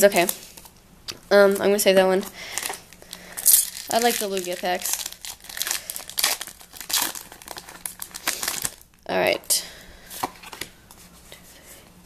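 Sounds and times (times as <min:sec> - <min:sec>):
foil wrapper crinkling and tearing: 0:02.5 - 0:09.0.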